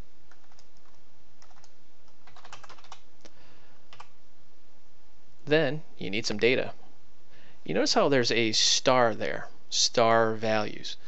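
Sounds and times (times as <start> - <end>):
typing on computer keyboard: 0.3 - 3.0.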